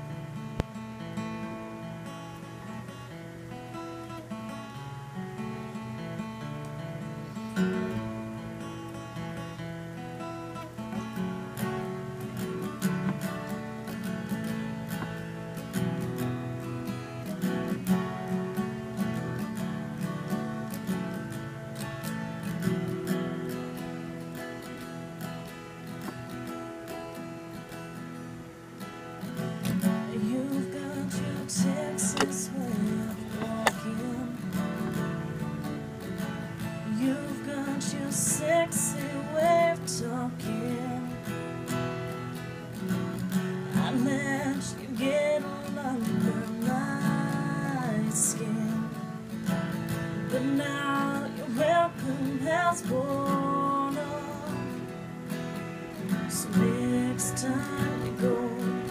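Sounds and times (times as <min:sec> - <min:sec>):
acoustic guitar strumming: 0:00.0 - 0:58.9.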